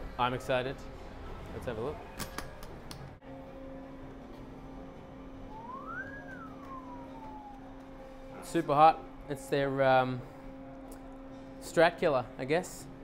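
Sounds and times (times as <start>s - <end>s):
steady low hum: 0.0s - 13.0s
rising and falling wail: 5.5s - 7.8s.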